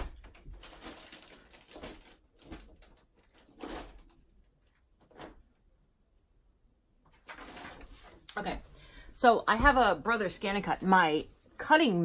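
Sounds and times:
person rummaging for paper: 0:00.1 - 0:05.4, 0:07.1 - 0:08.3.

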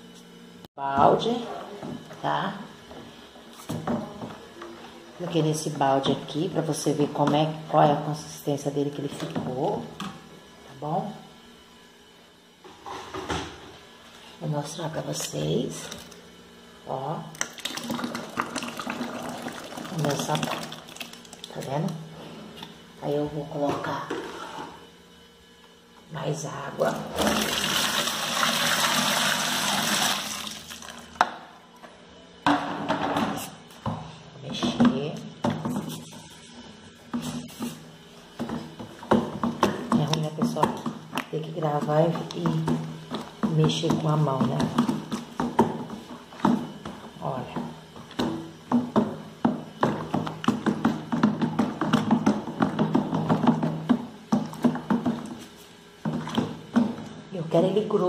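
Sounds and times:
water pouring into bucket: 0:17.4 - 0:21.5, 0:27.2 - 0:31.1
stick stirring liquid in bucket: 0:37.1 - 0:57.1
stick knocking plastic bucket: 0:47.6 - 0:55.4.

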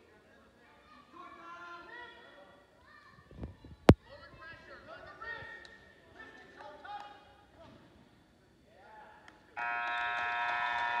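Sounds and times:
scoreboard buzzer: 0:09.6 - 0:11.0.

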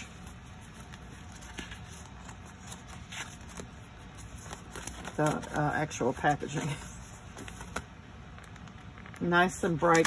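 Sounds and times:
paper sheets rustling: 0:00.0 - 0:07.8.

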